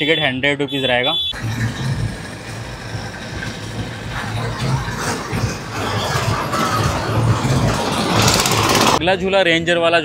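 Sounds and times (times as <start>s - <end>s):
roller coaster rumbling on track: 1.4s - 9.0s.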